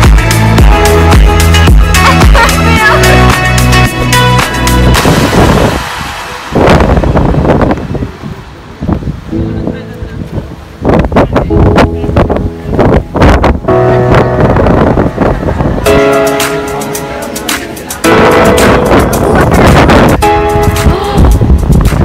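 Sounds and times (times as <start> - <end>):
background music: 0.0 - 7.7, 11.5 - 22.0
wind gusts on microphone: 2.1 - 22.0.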